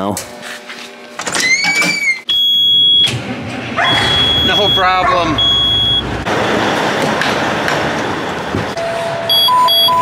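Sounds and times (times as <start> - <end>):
truck warning buzzer beeping: 2.3 - 3.2, 3.8 - 6.9, 8.8 - 10.0.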